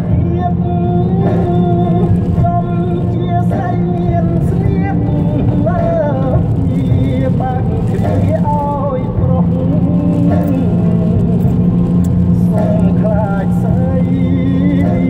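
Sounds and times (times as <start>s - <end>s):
car road and engine noise: 0.0s - 15.0s.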